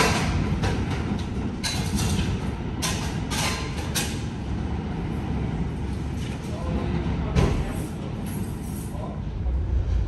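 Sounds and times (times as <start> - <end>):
subway train rumbling on rails: 0.0 - 10.0.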